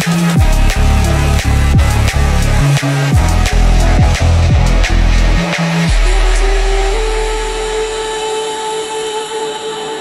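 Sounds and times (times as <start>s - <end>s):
drum and bass drums: 0.0s - 8.1s
steady synth tone: 0.0s - 8.3s
deep sub-bass note: 0.4s - 8.1s.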